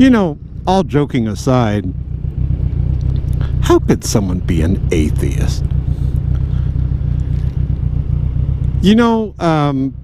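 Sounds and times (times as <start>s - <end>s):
man speaking: 0.0s - 2.0s, 3.4s - 5.7s, 8.8s - 10.0s
motorcycle engine idling: 0.0s - 10.0s.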